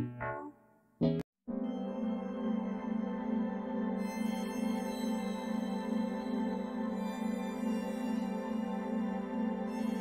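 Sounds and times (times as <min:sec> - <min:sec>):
slow ambient music: 0:01.5 - 0:10.0.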